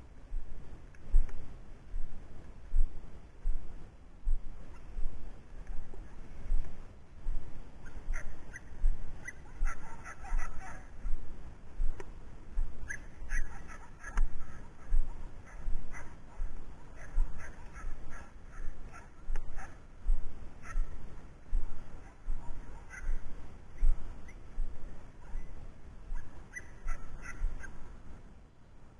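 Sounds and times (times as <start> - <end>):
footsteps in dry grass: 0.0 - 25.6.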